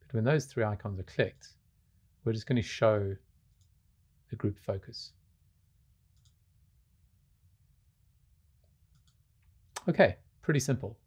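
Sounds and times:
man talking: 0.0s - 1.5s, 2.2s - 3.2s, 4.3s - 5.1s, 9.8s - 11.0s
computer mouse clicks: 6.1s - 6.4s, 8.9s - 9.2s.

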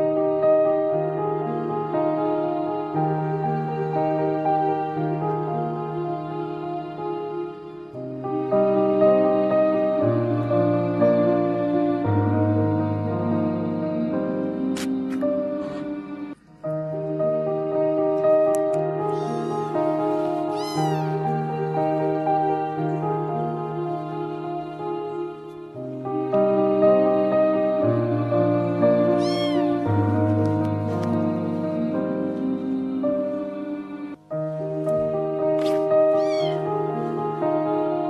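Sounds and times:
background music: 0.0s - 38.0s
kitten meowing: 19.1s - 19.8s, 20.4s - 21.3s, 29.2s - 29.8s, 36.1s - 36.7s.

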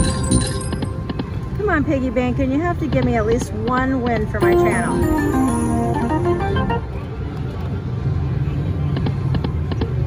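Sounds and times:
slot machine win jingle: 0.0s - 1.0s, 4.4s - 7.1s.

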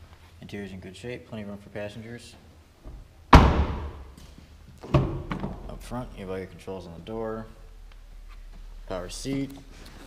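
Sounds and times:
car door slamming shut: 3.3s - 4.0s.

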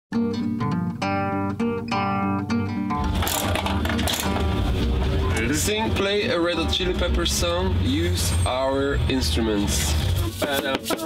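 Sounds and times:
plucked string jingle: 0.1s - 7.6s.

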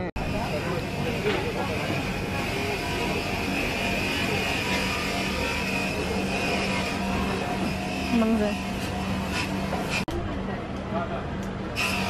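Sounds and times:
faint voices: 0.0s - 8.6s
mechanical hum: 0.0s - 12.0s.

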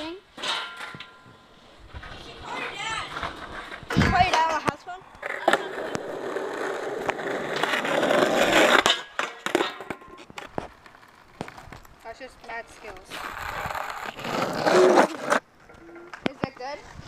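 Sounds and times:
skateboard wheels rolling on asphalt: 0.0s - 17.0s
sharp skateboard clacks: 2.0s - 16.6s.

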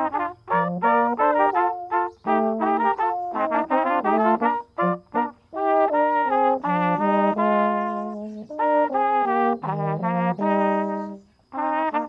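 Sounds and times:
brass trio playing: 0.0s - 12.0s.

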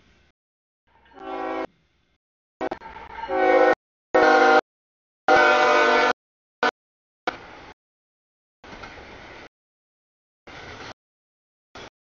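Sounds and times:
locomotive air horn blasts: 1.1s - 1.7s, 2.6s - 4.6s, 5.3s - 6.7s.

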